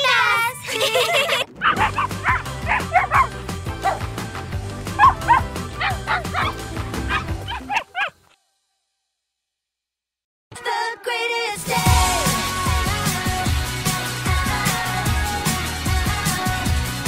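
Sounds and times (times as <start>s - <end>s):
cheerful music with steady beat: 1.8s - 7.7s, 11.4s - 17.0s
short dog barks and yips: 5.0s - 8.2s.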